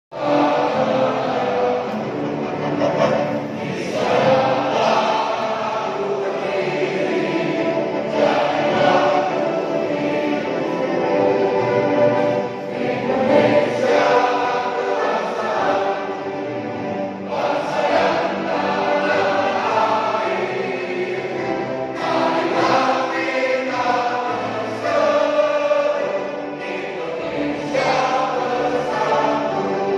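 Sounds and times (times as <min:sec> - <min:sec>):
choir singing: 0:00.1 - 0:29.9.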